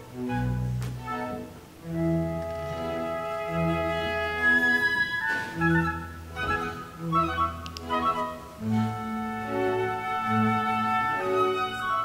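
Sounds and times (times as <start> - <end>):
sustained strings and woodwinds: 0.0 - 12.0.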